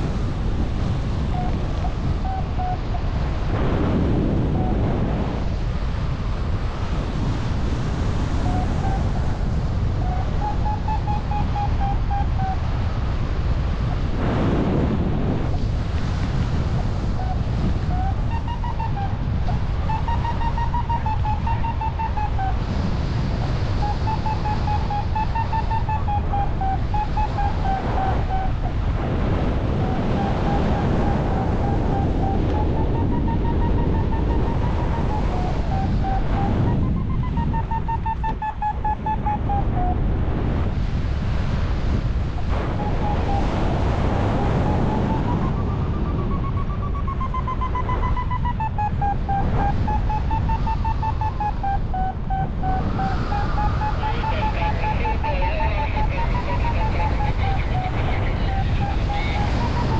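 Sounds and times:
wind rushing on microphone: 0.0 - 59.9.

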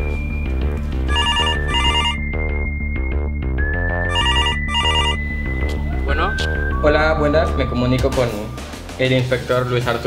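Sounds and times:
music with low bass: 0.0 - 10.0
telephone ringing: 1.1 - 2.4, 4.0 - 5.3.

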